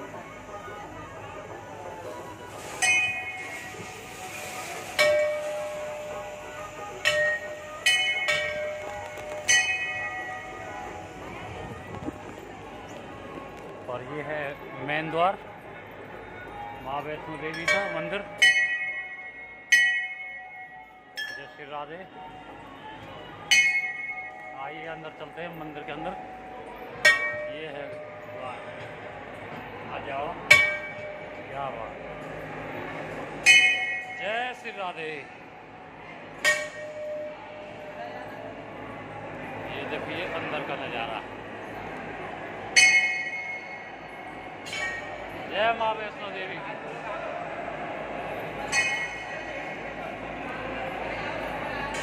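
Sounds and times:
metal temple bells ringing: 0:02.6 - 0:13.0, 0:14.0 - 0:21.8, 0:23.4 - 0:35.5, 0:36.4 - 0:46.6, 0:48.2 - 0:50.2.

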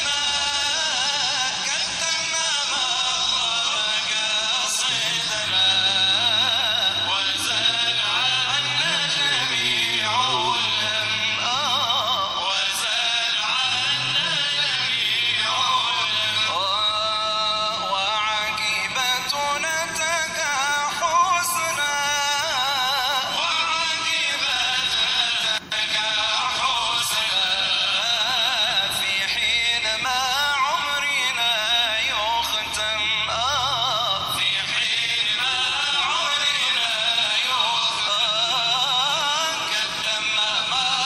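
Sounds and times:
person singing devotional melody: 0:00.0 - 0:41.0.

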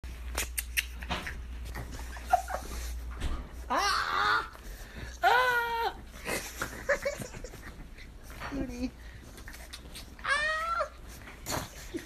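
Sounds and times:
dog whining: 0:09.5 - 0:11.3.

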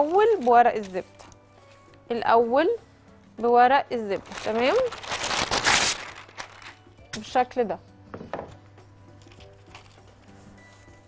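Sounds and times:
paper rustling: 0:00.0 - 0:01.9, 0:04.1 - 0:06.8, 0:09.3 - 0:11.0.

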